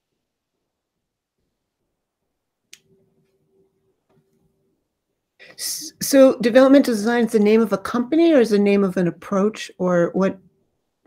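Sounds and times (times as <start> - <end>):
faint steady hum: 0.0 - 11.0.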